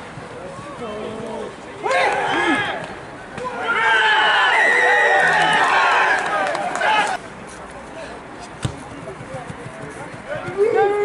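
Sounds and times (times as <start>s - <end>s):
outdoor background noise: 0.0s - 11.0s
people shouting: 1.8s - 2.8s, 3.4s - 7.2s.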